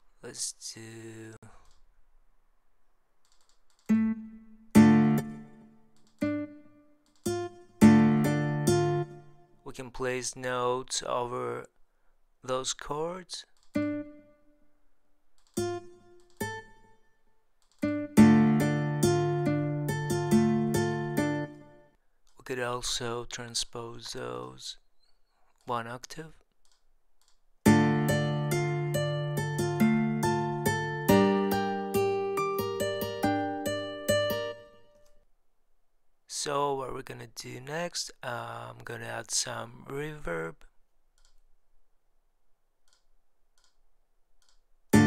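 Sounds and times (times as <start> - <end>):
plucked guitar notes: 3.9 - 9.6, 13.8 - 14.5, 15.6 - 17.0, 17.8 - 21.8, 27.7 - 35.0.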